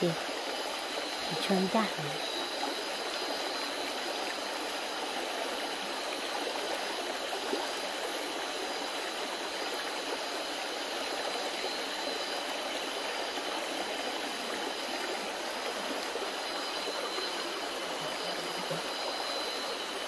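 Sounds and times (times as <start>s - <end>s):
stream water flowing: 0.0s - 20.0s.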